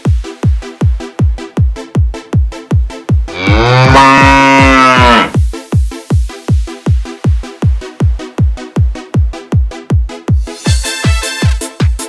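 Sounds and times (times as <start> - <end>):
techno beat: 0.0 - 12.0
cow mooing: 3.3 - 5.4.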